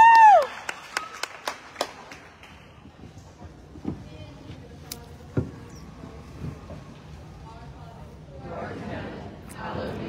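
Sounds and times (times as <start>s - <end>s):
spectators clapping: 0.0s - 2.9s.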